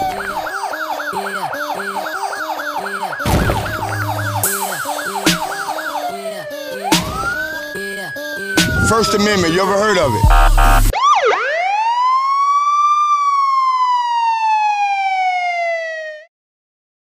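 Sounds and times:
police siren wailing: 0.0s - 16.3s
heavy music hits: 3.3s - 5.8s, 10.1s - 10.9s
intro music with steady beat: 3.8s - 5.8s, 10.1s - 10.9s.

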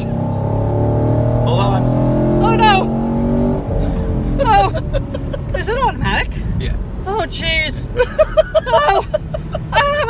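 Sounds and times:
car engine at speed: 0.0s - 10.0s.

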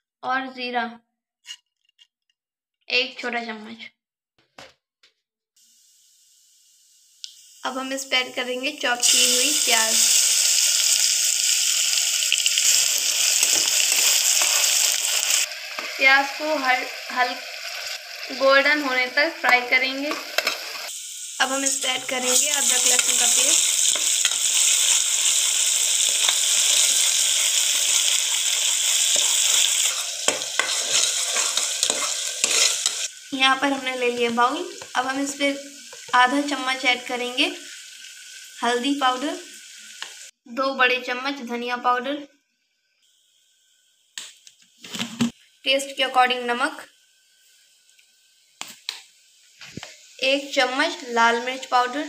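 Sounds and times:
hot oil sizzling: 5.6s - 40.4s, 42.8s - 52.0s
spatula tapping and scraping pot: 19.5s - 20.6s, 29.8s - 33.0s.

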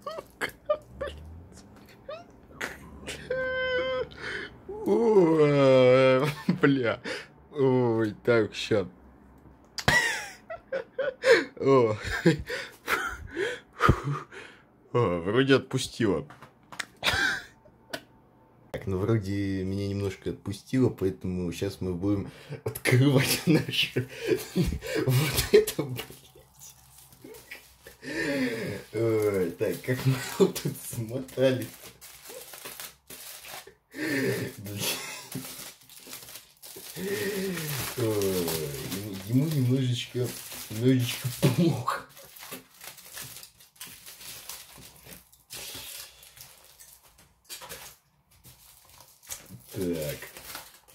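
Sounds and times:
person speaking: 18.7s - 32.6s, 34.0s - 36.2s, 36.8s - 42.4s
aluminium foil crinkling: 25.1s - 50.9s.

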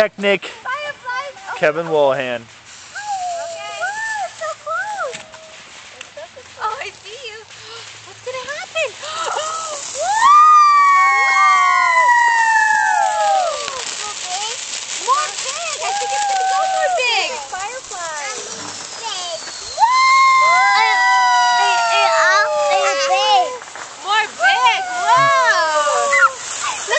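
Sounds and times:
firework sparks crackling hiss: 0.0s - 26.9s
short warbling whistles: 18.3s - 21.1s
whistles sliding down in pitch: 18.3s - 22.8s.

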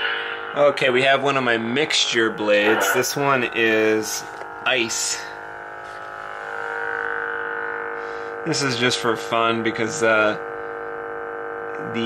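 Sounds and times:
electronic lightsaber hum: 0.0s - 12.0s.

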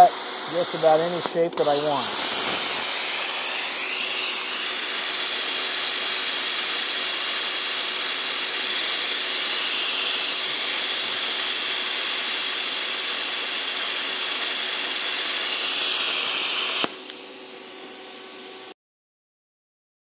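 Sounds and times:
plasma cutter torch hissing: 0.0s - 18.8s.

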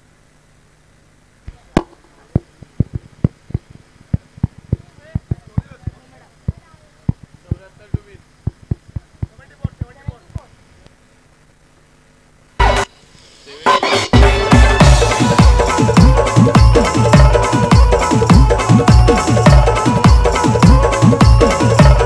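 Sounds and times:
sharp taps: 1.8s - 10.5s.

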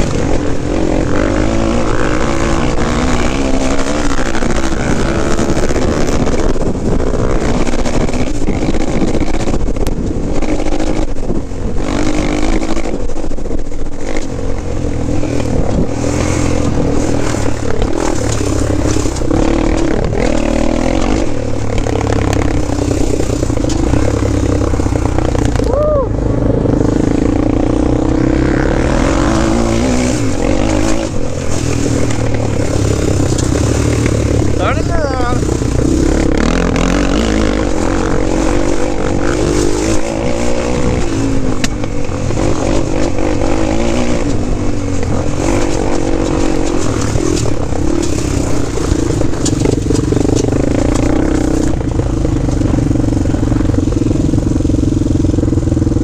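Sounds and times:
quad engine revving while riding: 0.0s - 56.0s.

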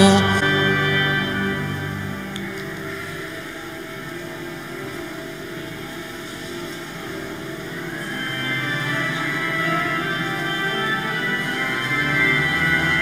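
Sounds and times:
pipe organ sustained chords: 0.0s - 13.0s.

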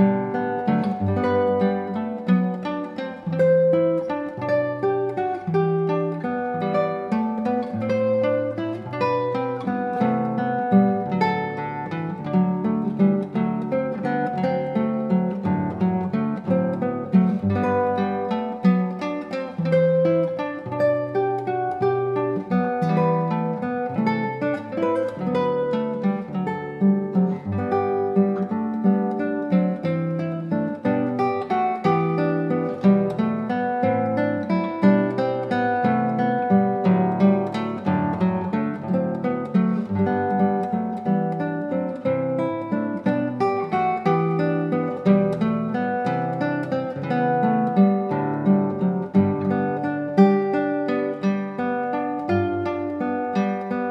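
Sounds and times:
classical guitar fingerstyle: 0.0s - 53.9s.

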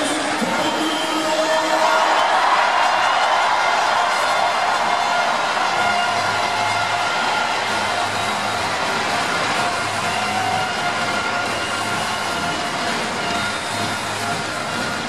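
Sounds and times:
stadium crowd din: 0.0s - 15.0s
music with pulsing bass beat: 4.0s - 15.0s.

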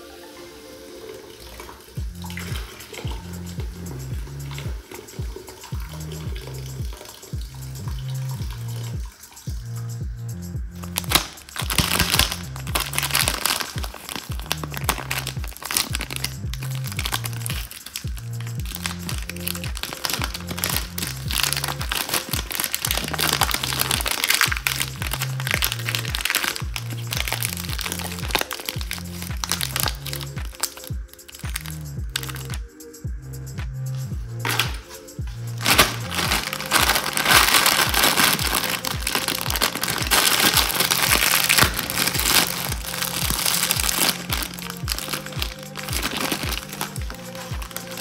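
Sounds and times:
soda pouring: 0.0s - 9.6s, 10.8s - 32.5s, 34.4s - 48.0s
background music with bass beat: 1.8s - 48.0s
plastic candy packet crinkling: 10.9s - 32.6s, 34.4s - 48.0s.

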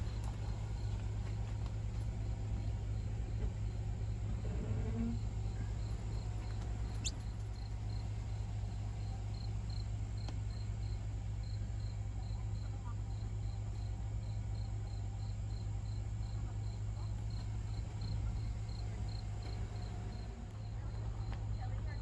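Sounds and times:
insect chirping: 5.0s - 21.3s.

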